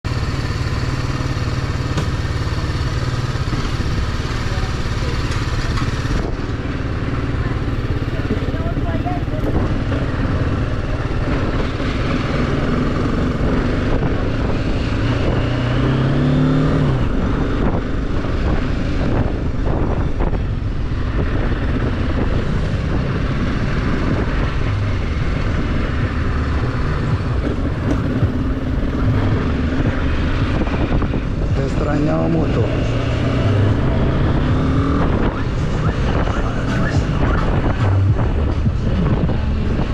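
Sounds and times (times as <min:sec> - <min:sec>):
motorcycle engine running: 0:00.0 - 0:39.9
wind noise: 0:05.7 - 0:39.9.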